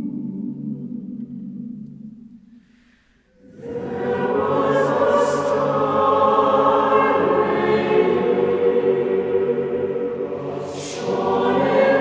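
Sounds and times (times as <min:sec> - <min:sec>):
choir singing: 0:03.4 - 0:12.0.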